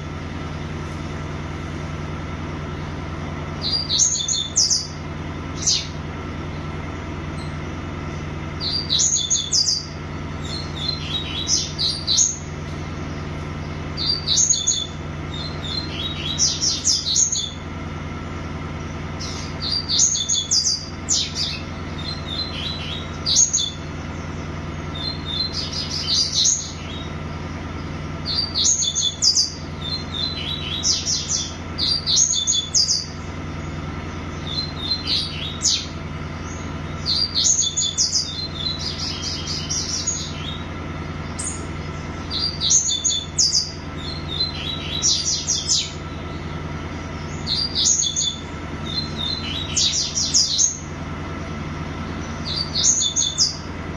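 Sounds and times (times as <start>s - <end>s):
songbird chirping: 0.0s - 53.9s
steady low hum: 0.0s - 53.9s.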